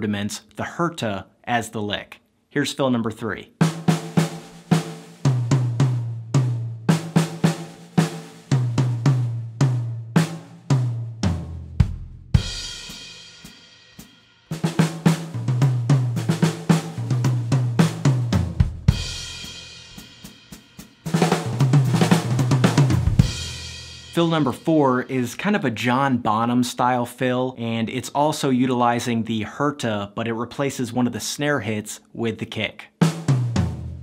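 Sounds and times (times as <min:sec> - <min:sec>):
drum kit beat and fill: 0:03.6 - 0:25.4, 0:32.9 - 0:34.0.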